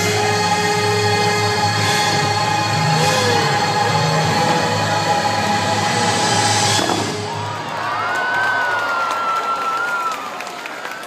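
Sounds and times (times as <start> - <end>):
soundtrack music: 0.0 - 8.0
crowd cheering: 6.9 - 11.0.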